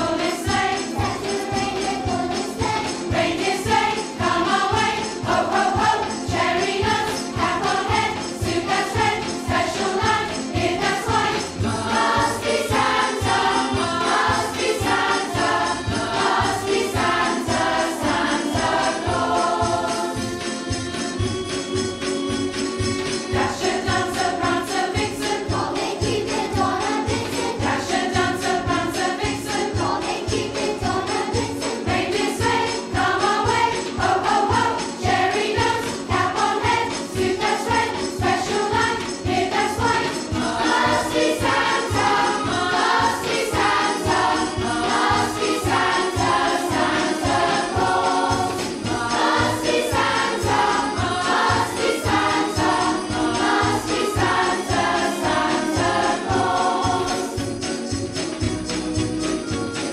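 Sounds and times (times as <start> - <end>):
children's choir singing: 0.0 - 58.1
sleigh bells ringing: 0.0 - 59.9.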